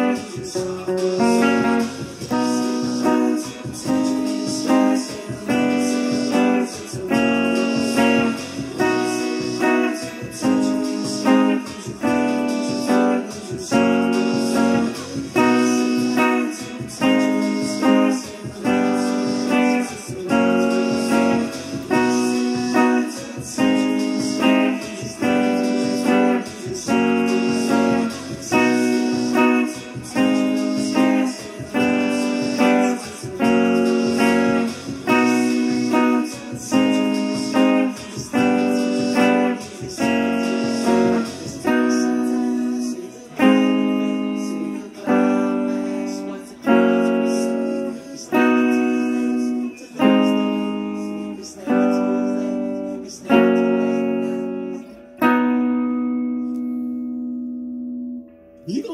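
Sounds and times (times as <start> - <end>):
electric guitar strumming chords: 0.0 - 58.9.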